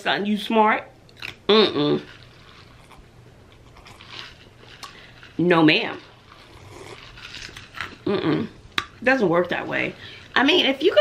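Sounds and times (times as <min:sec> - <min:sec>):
soft slurp: 0:02.0 - 0:08.6
person sipping and swallowing: 0:02.1 - 0:05.2, 0:06.1 - 0:09.0.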